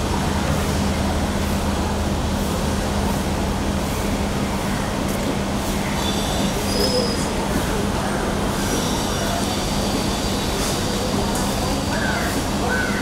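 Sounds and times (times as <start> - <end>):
street noise low hum: 0.0 - 13.0.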